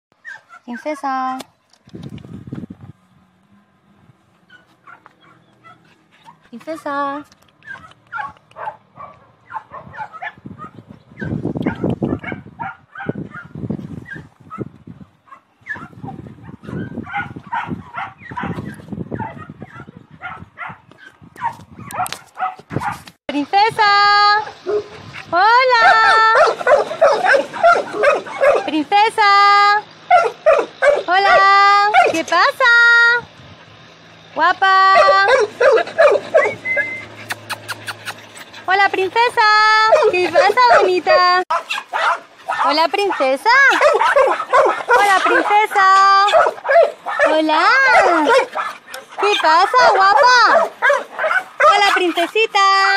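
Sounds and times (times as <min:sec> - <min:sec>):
sharp clicks: 0:07.2 - 0:08.8
dog whimpering and yipping: 0:07.6 - 0:08.4, 0:09.5 - 0:14.6, 0:15.3 - 0:22.5, 0:35.0 - 0:38.7, 0:39.9 - 0:52.9
dog whining: 0:35.0 - 0:38.7.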